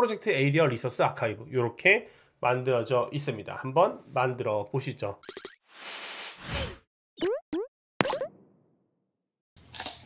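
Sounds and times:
rising cartoon bloops: 5.2s - 5.6s, 7.2s - 8.5s
sharp cartoon sound effect: 7.2s - 8.3s.

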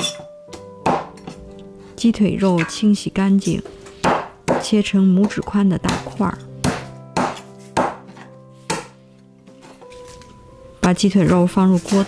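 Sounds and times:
soft background music: 0.0s - 12.0s
cleaver chopping on wooden board: 0.8s - 1.4s, 4.0s - 4.7s, 5.9s - 9.0s.

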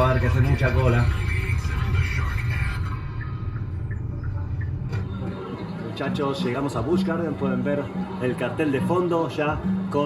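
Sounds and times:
car radio music: 0.0s - 10.0s.

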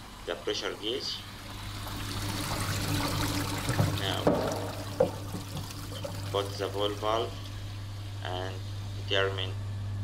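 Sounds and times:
pump humming: 0.0s - 10.0s
water trickling into tank: 1.3s - 7.8s.

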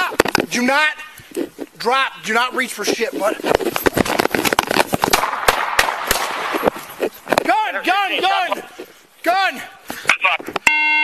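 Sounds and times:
handgun shots: 5.1s - 6.6s.

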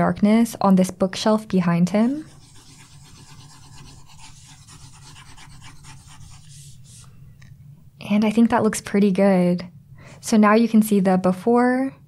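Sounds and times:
stylus scratching graphics tablet: 2.0s - 7.1s.

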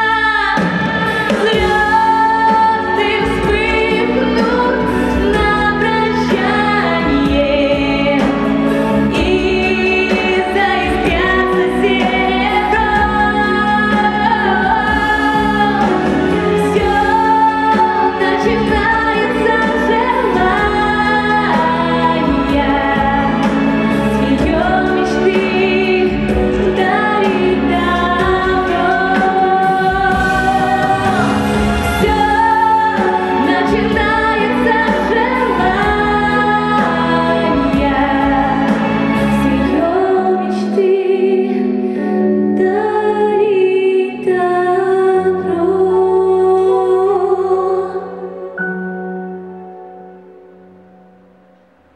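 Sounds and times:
woman singing pop ballad: 0.0s - 49.0s
instrumental accompaniment: 0.0s - 51.9s.

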